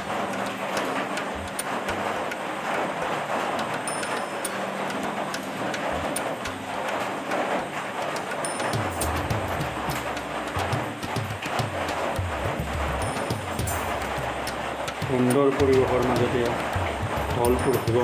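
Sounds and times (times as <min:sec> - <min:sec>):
music playing: 0:00.0 - 0:18.0.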